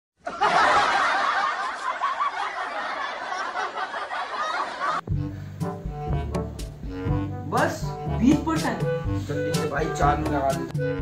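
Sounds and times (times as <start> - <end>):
laughter: 0.2 - 5.0.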